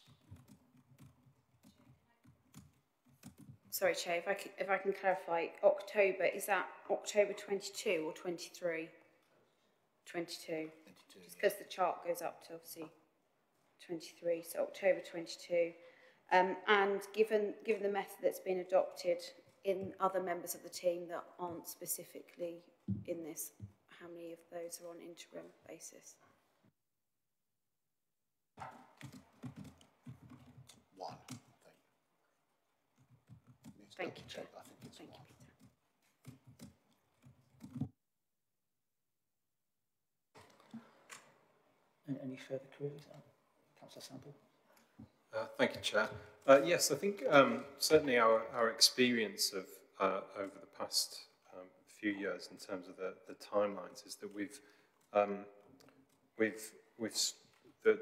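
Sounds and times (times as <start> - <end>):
laptop keyboard typing: 0.0 - 3.7, 28.6 - 31.5, 33.0 - 37.9
woman speaking: 3.7 - 8.9, 10.1 - 13.0, 13.8 - 26.2.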